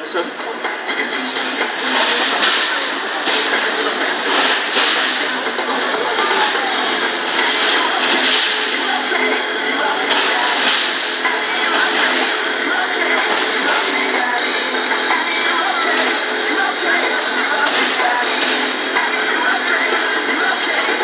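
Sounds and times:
music over loudspeakers: 0.0s - 21.0s.

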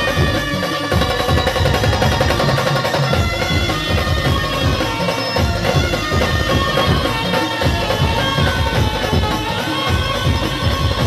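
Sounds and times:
band held melody notes: 0.0s - 11.0s
drum roll: 0.0s - 11.0s.

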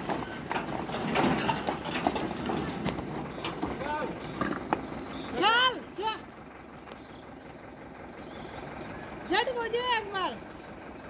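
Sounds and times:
tractor diesel engine idling: 0.0s - 11.0s.

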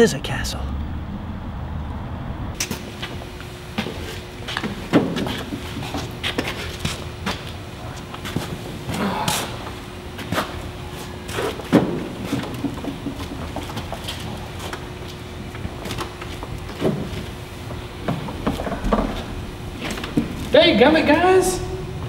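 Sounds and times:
faint steady hum: 0.0s - 22.0s
people shuffling and scuffling: 3.8s - 22.0s.

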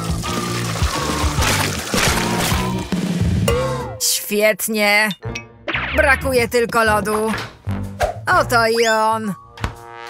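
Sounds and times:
thick drink pouring: 0.0s - 2.6s.

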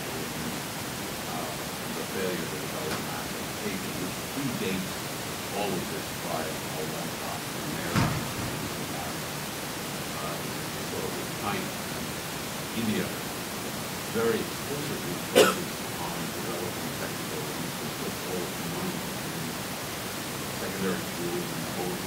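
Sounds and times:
distant person talking: 0.0s - 9.4s, 10.1s - 13.4s, 14.0s - 19.6s, 20.4s - 22.0s
steady hiss: 0.0s - 22.0s.

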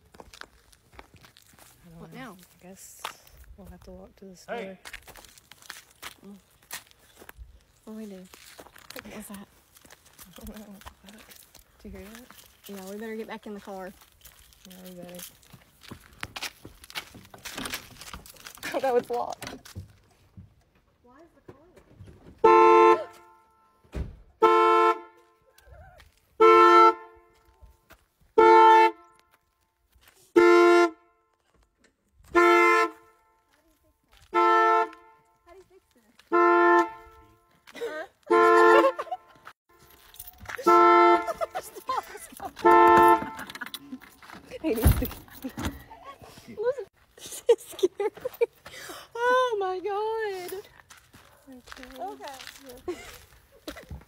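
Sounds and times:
footsteps scuffing: 0.0s - 4.0s, 4.7s - 20.1s, 27.2s - 28.4s, 29.1s - 30.4s, 33.0s - 54.0s
woman speaking: 1.8s - 4.5s, 7.8s - 8.3s, 8.9s - 9.5s, 10.2s - 14.0s, 14.6s - 15.3s, 18.6s - 19.6s, 35.4s - 36.2s, 44.5s - 45.1s, 45.8s - 46.9s, 49.1s - 50.7s, 51.4s - 53.0s
car horn honking: 22.3s - 25.5s, 26.4s - 27.5s, 28.3s - 29.2s, 30.3s - 31.3s, 32.2s - 33.5s, 34.2s - 35.6s, 36.2s - 44.1s.

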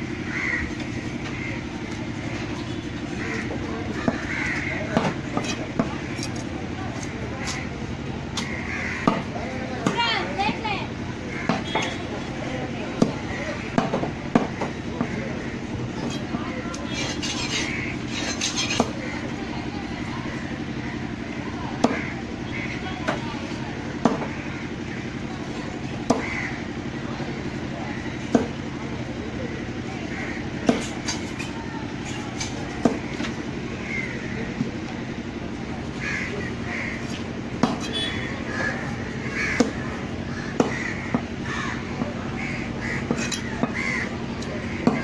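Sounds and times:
low background hum: 0.0s - 45.0s
steady background din: 0.0s - 45.0s
knife chopping fish on wood: 30.6s - 31.4s, 37.6s - 38.0s.

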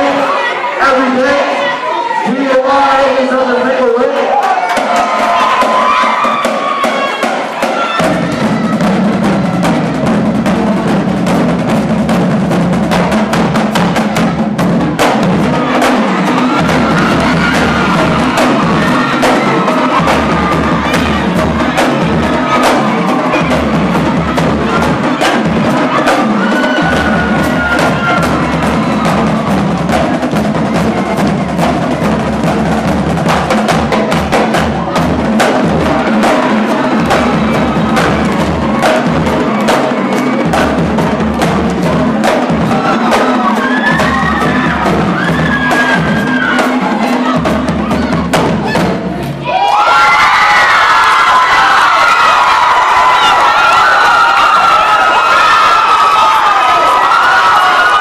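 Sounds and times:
crowd cheering and shouting: 0.0s - 58.0s
marching drumline: 4.3s - 58.0s.

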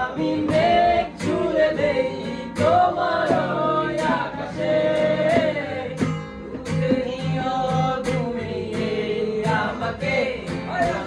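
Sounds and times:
men singing together: 0.0s - 11.0s
strummed acoustic guitar: 0.0s - 11.0s.

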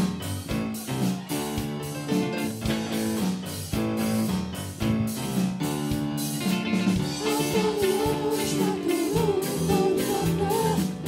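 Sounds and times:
drum hits: 0.0s - 11.0s
guitar: 0.0s - 11.0s
keyboard chords: 0.0s - 11.0s.

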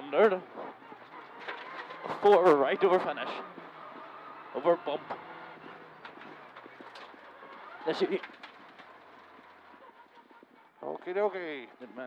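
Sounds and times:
car engine: 0.0s - 12.0s
road noise inside car: 0.0s - 12.0s
small clicks and rattles: 1.0s - 2.5s, 5.1s - 10.7s.

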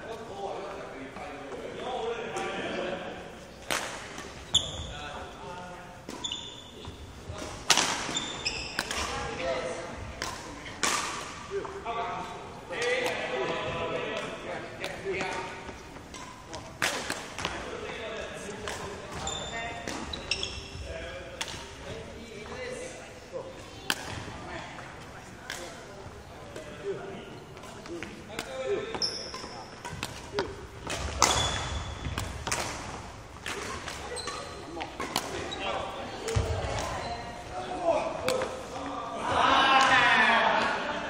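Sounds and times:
voices in background: 0.0s - 41.0s
shoe squeaks on wooden floor: 4.4s - 5.0s, 6.2s - 7.0s, 8.1s - 8.9s, 19.2s - 20.8s, 28.9s - 29.7s, 31.2s - 32.1s, 34.1s - 34.8s
rackets striking shuttlecocks: 7.4s - 9.4s, 10.1s - 11.8s, 23.8s - 24.3s, 27.6s - 35.5s.

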